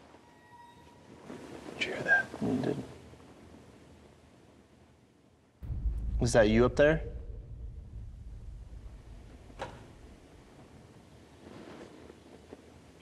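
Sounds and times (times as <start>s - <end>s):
low rumble: 5.6s - 11.0s
sharp wooden crack: 7.9s - 10.6s.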